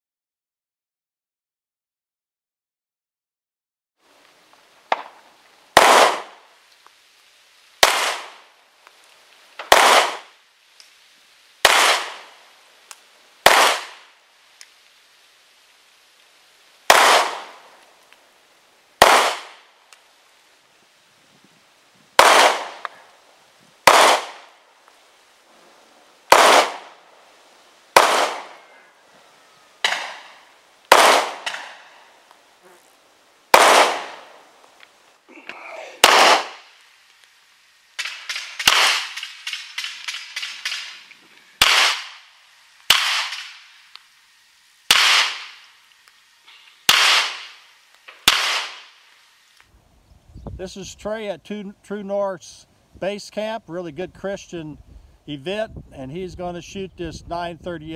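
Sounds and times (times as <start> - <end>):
pistol shots with echo: 5.8 - 6.4, 7.8 - 8.4, 9.7 - 10.3, 11.6 - 12.3, 13.4 - 14.0, 16.9 - 17.6, 19.0 - 19.6, 22.2 - 23.0, 23.9 - 24.5, 26.3 - 26.9, 28.0 - 28.7, 30.9 - 31.8, 33.5 - 34.3, 36.0 - 36.6, 38.0 - 40.9, 41.6 - 42.2, 44.9 - 45.5, 46.9 - 47.5, 48.2 - 48.8.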